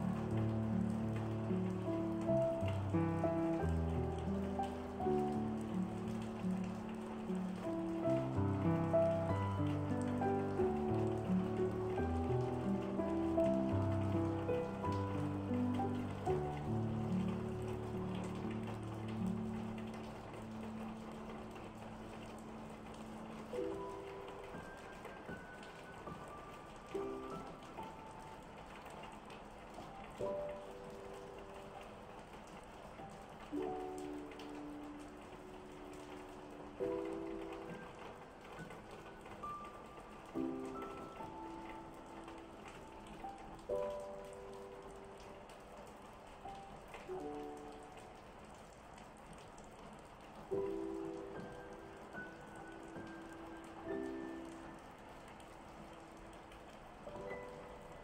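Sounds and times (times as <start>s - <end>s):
calm solo piano: 0.0s - 32.2s, 32.8s - 48.5s, 50.1s - 58.0s
rain pattering: 0.0s - 58.0s.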